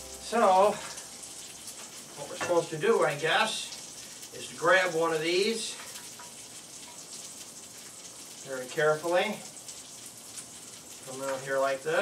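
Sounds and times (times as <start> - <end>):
food sizzling: 0.0 - 12.0.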